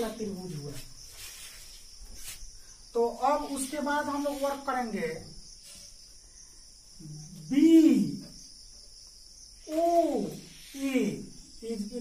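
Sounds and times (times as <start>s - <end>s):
high-pitched chirring hiss: 0.0s - 12.0s.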